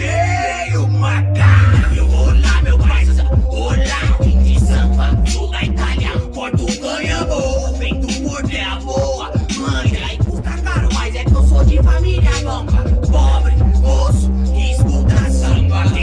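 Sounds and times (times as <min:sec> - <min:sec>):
rapping over heavy bass beat: 0:00.0 - 0:16.0.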